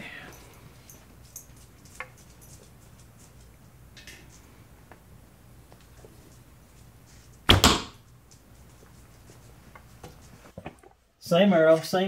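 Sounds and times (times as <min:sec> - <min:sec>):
arrow hitting target: 0:07.5 - 0:08.0.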